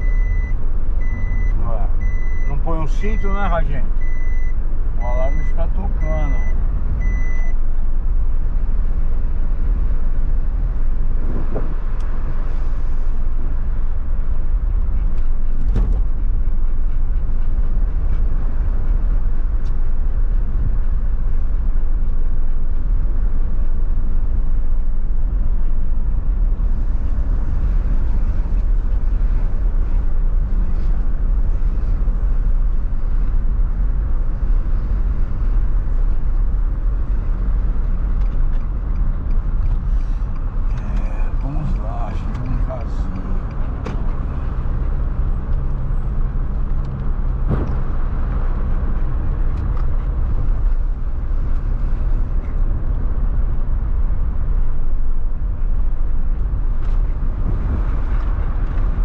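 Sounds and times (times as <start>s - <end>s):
car road noise rumble: 0.0s - 59.0s.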